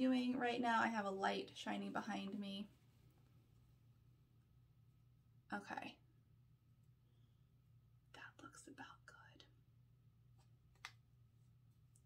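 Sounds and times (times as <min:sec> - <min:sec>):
woman whispering: 0:08.1 - 0:09.6.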